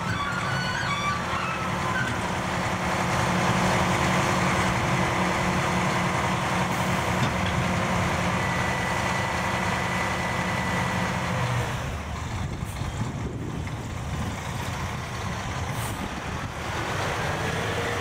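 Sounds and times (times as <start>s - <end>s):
diesel truck engine running: 0.0s - 18.0s.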